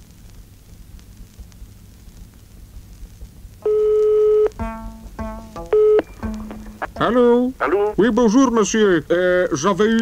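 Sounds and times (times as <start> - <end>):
telephone dialling beeps: 3.6 - 4.5
telephone line tone: 3.6 - 4.5, 5.7 - 7.1.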